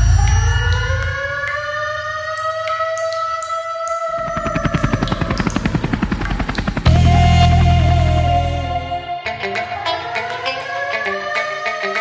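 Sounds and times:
helicopter rotor blades chopping: 3.8s - 9.0s
deep bass music note: 6.8s - 9.1s.

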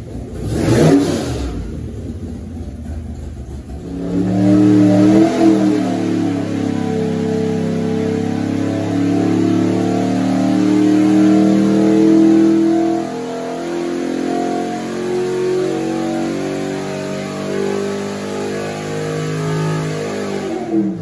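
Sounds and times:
engine revving under load: 0.0s - 21.0s.

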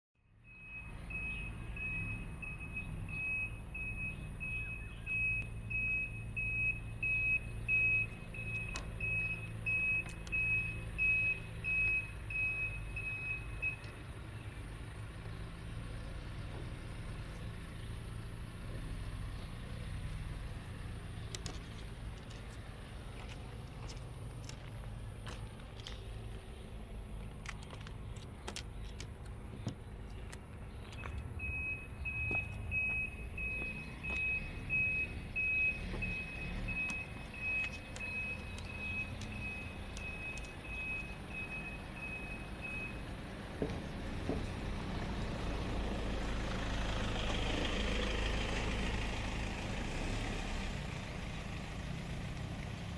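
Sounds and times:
vehicle reversing alarm beeps: 0.2s - 19.6s, 30.2s - 43.3s
low engine rumble: 0.2s - 52.9s.

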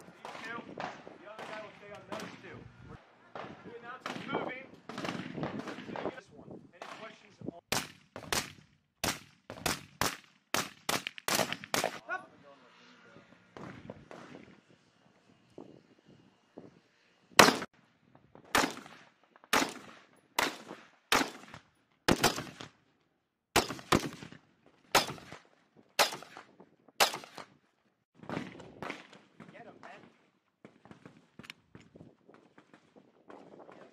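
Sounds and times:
rifle shots: 3.3s - 6.2s, 6.8s - 12.0s, 17.4s - 17.7s, 18.5s - 22.7s, 23.6s - 25.4s, 26.0s - 26.4s, 27.0s - 27.4s.

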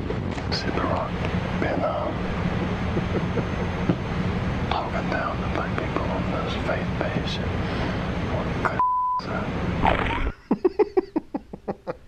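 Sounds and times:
steady low hum: 0.0s - 12.0s
man speaking in low whisper: 4.7s - 7.6s, 8.2s - 9.6s.

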